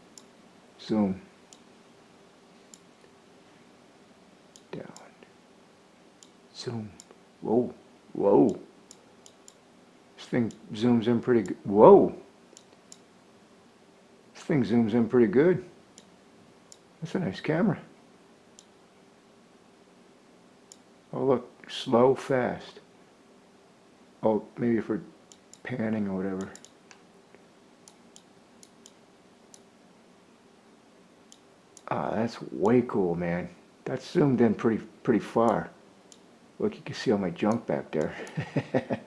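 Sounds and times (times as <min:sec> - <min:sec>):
computer mouse clicks: 0:00.0 - 0:00.3, 0:02.7 - 0:03.1, 0:04.5 - 0:05.1, 0:06.2 - 0:06.4, 0:07.0 - 0:07.2, 0:08.5 - 0:09.6, 0:12.5 - 0:13.1, 0:16.7 - 0:16.9, 0:18.6 - 0:18.8, 0:20.7 - 0:20.9, 0:26.4 - 0:27.0, 0:27.8 - 0:29.7, 0:31.3 - 0:31.9, 0:35.4 - 0:36.3
faint steady hum: 0:00.0 - 0:39.0.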